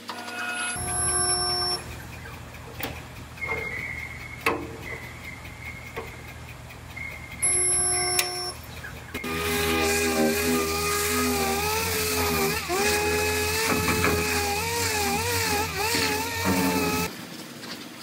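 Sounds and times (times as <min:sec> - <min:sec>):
air grinder whining: 0:00.0 - 0:17.1
spot welder humming: 0:00.3 - 0:17.1.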